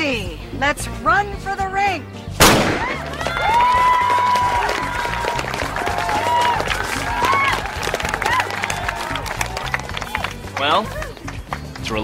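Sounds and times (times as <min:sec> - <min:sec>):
background music: 0:00.0 - 0:12.0
starting pistol shot: 0:02.4 - 0:03.0
crowd cheering and shouting: 0:02.8 - 0:11.2.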